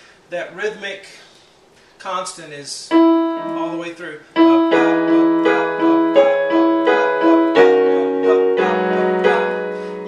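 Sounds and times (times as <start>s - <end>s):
low piano note: 2.9s - 10.0s
piano chords repeated: 2.9s - 10.0s.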